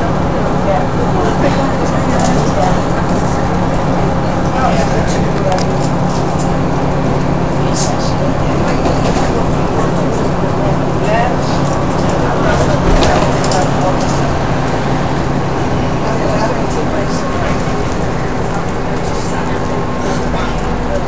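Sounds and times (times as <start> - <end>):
bus body rattles and knocks: 0.0 - 21.0
bus engine drone: 0.0 - 21.0
road noise: 0.0 - 21.0.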